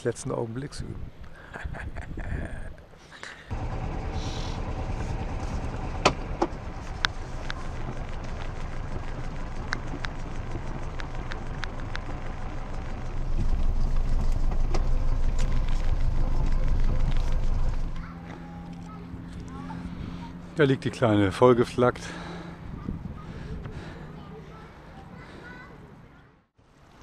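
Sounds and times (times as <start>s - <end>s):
boat engine rumbling: 3.5s - 26.0s
sharp clicks: 6.0s - 12.6s.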